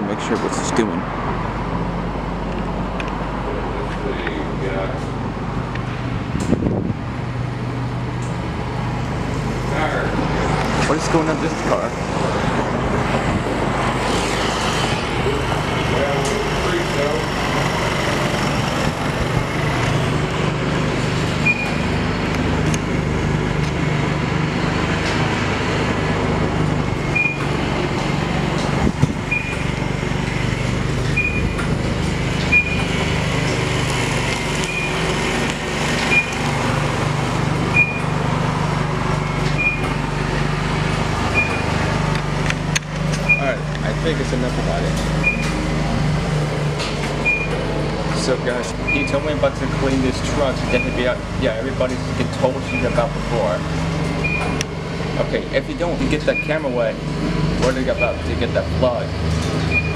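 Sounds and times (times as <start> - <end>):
high electronic beeps: 21.4 - 22.0, 27.1 - 27.6, 29.3 - 29.8, 31.2 - 31.7, 32.5 - 33.0, 34.6 - 35.1, 36.1 - 36.5, 37.7 - 38.2, 39.2 - 40.0, 41.3 - 41.8, 45.2 - 45.6, 47.2 - 47.6, 50.7 - 51.2, 54.2 - 54.6, 58.0 - 58.3.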